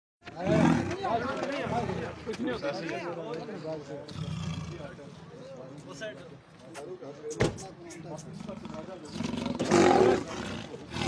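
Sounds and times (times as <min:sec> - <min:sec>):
men talking and calling out: 0:00.2 - 0:11.0
leopard growling: 0:04.1 - 0:04.9, 0:08.2 - 0:11.0.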